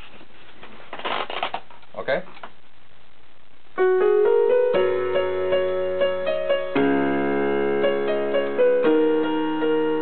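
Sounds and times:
rustling and scraping handling noise: 0:00.0 - 0:02.6.

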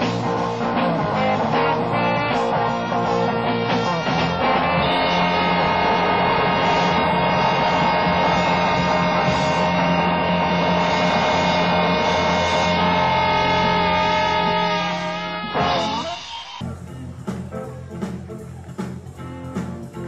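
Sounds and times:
band's sustained final chord: 0:04.4 - 0:16.0.

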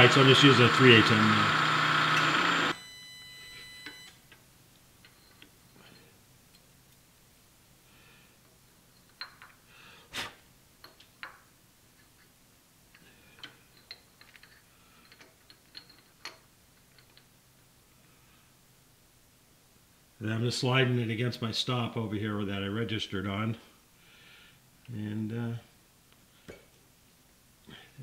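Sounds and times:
faint steady hum: 0:00.0 - 0:28.0
metal nut clicking and knocking: 0:08.9 - 0:09.6, 0:10.8 - 0:12.3, 0:12.9 - 0:17.3.

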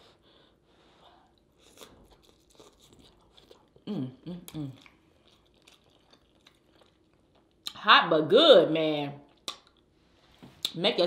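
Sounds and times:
person chewing food: 0:01.2 - 0:07.8, 0:09.3 - 0:09.9
person humming mmm: 0:03.8 - 0:04.9.

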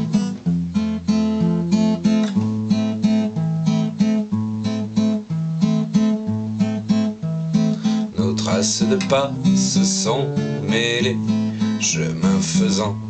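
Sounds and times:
acoustic guitar playing: 0:00.0 - 0:13.0.

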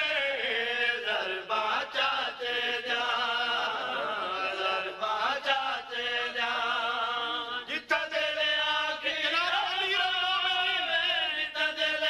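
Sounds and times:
man chanting devotional song: 0:00.0 - 0:12.0.

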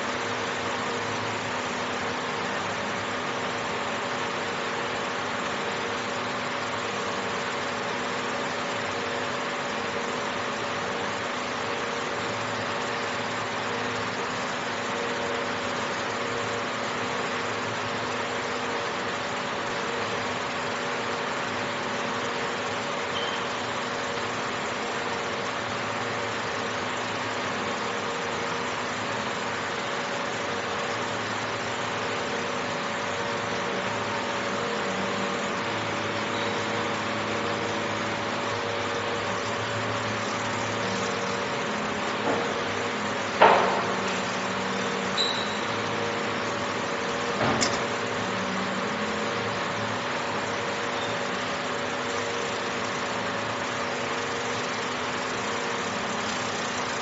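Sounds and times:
laser marking machine hum: 0:00.0 - 0:57.0.

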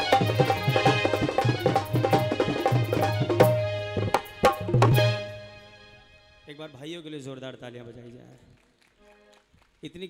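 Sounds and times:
tabla playing quick rhythm: 0:00.0 - 0:05.6.

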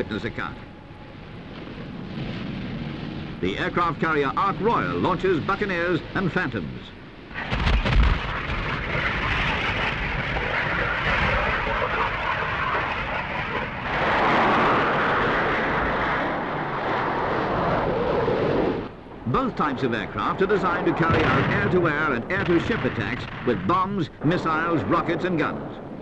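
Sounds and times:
jet engines roaring: 0:00.0 - 0:26.0.

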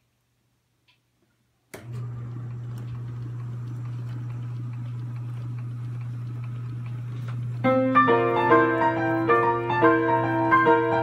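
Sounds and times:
electric motor humming: 0:01.8 - 0:11.0.

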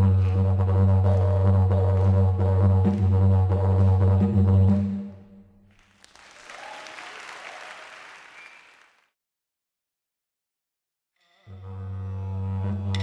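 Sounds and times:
didgeridoo drone: 0:00.0 - 0:05.1, 0:11.5 - 0:13.0
applause: 0:05.7 - 0:09.2.

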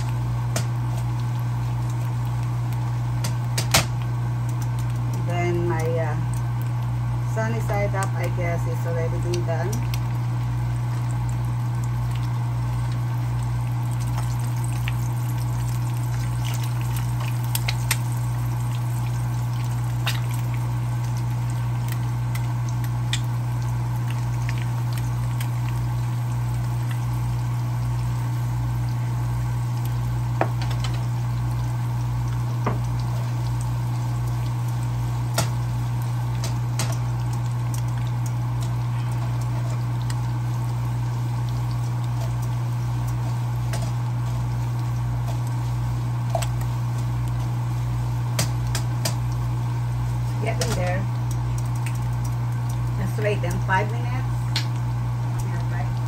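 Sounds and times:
loud steady low hum: 0:00.0 - 0:52.1, 0:52.7 - 0:56.0
potatoes sizzling in oil: 0:00.0 - 0:56.0.

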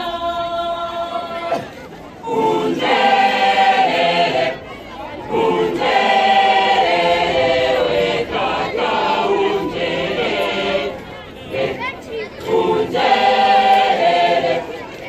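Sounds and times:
large choir singing: 0:00.0 - 0:15.0.

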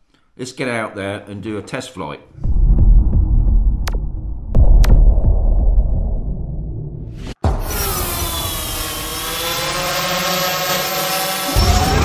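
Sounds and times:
deep boom: 0:02.4 - 0:07.7.

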